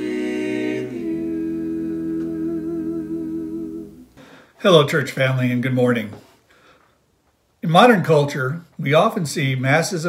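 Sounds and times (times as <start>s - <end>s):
vocal quartet humming a chord: 0.0s - 4.4s
man speaking: 4.6s - 6.3s, 7.6s - 10.0s.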